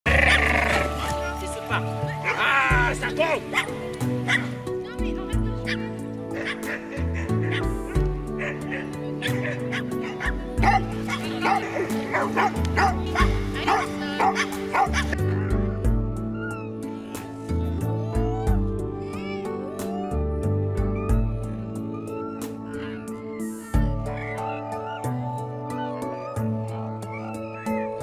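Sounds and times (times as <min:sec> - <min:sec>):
background music with bass line: 0:00.0 - 0:28.0
dogs barking: 0:00.1 - 0:01.0, 0:03.4 - 0:04.6, 0:05.6 - 0:15.6.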